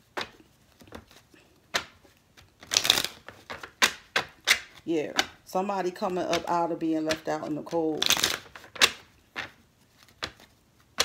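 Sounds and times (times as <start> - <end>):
cards being shuffled: 0.0 - 5.4, 6.0 - 11.0.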